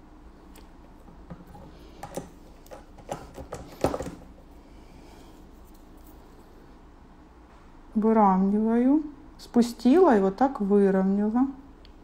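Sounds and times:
manicure tools clicking and tapping: 1.2 - 4.2.

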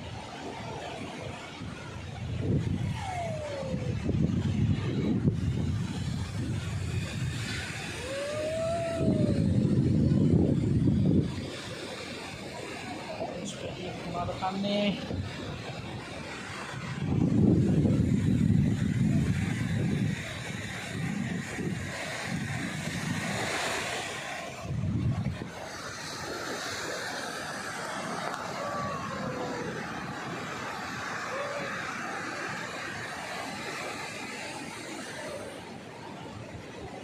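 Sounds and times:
surf breaking on beach: 0.0 - 37.0
wind buffeting microphone: 0.0 - 37.0.

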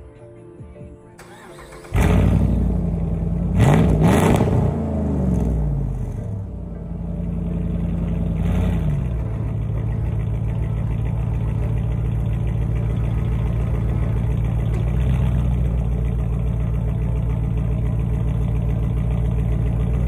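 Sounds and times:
truck engine idling: 1.2 - 3.7, 4.6 - 20.0.

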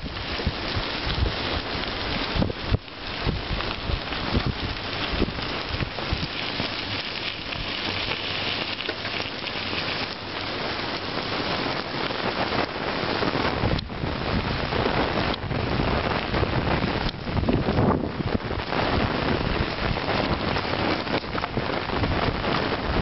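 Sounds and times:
bicycle tyres on gravel: 0.0 - 23.0
wind buffeting microphone: 0.0 - 23.0.

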